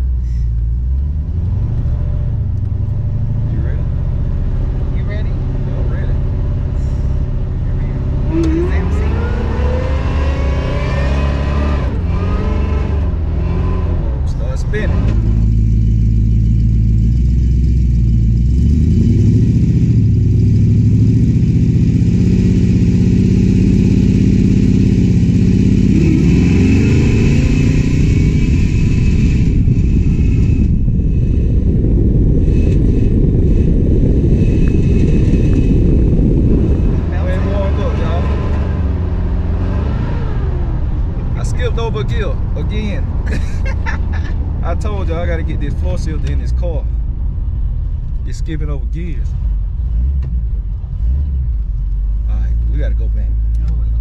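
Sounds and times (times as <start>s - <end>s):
car engine accelerating hard: 0.8s - 46.8s.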